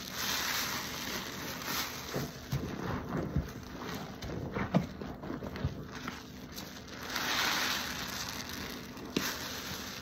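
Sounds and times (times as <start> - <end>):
foam hissing: 0.0 - 5.0, 5.6 - 10.0
sponge squelching in suds: 0.0 - 10.0.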